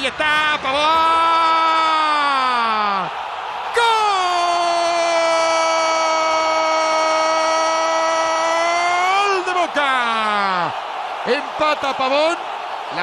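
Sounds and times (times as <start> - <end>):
football commentator's goal cry: 0.1 - 13.0.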